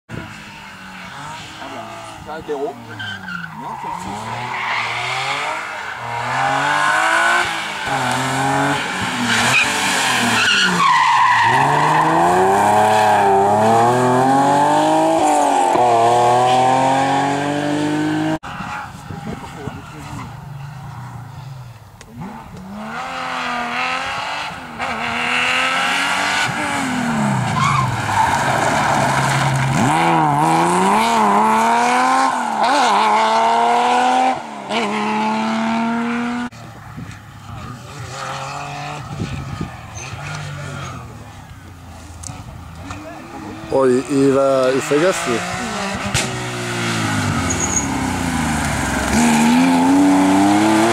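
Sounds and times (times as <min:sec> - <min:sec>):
rally car engines revving: 0:00.1 - 0:50.9.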